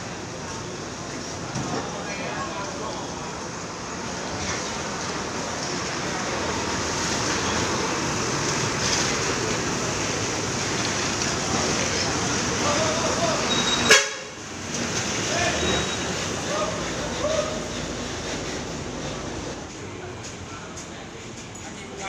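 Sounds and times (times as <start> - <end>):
diesel bus engines rumbling: 0.0 - 22.0.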